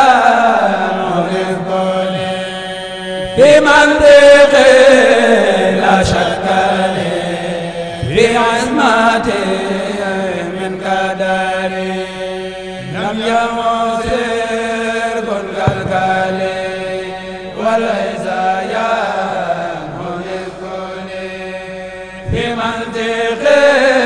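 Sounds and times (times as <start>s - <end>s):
man chanting devotional poem: 0.0s - 24.0s.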